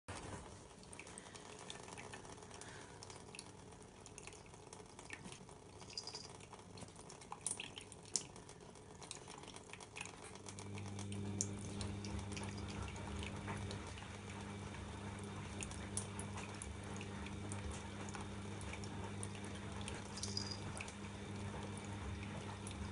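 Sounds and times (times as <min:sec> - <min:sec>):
low steady hum: 0:00.1 - 0:22.9
small splashes and ticks: 0:00.6 - 0:14.6, 0:15.2 - 0:21.0
tap water running into steel sink: 0:01.1 - 0:22.9.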